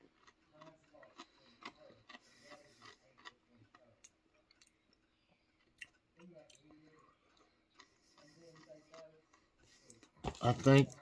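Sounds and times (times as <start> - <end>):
chewing crispy food: 0.0 - 11.0.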